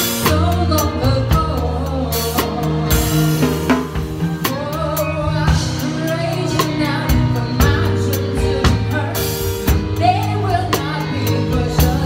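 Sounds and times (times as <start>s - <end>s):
woman singing: 0.0s - 3.6s, 4.2s - 12.0s
live band music: 0.0s - 12.0s.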